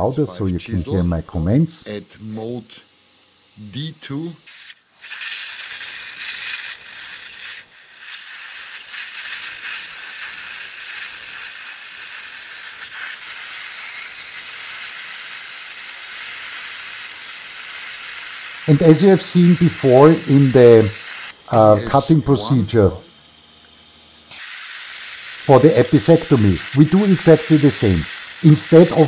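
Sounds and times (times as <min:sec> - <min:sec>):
surgical handpiece hissing: 0:03.6 - 0:29.0
thin high whine: 0:18.6 - 0:23.2.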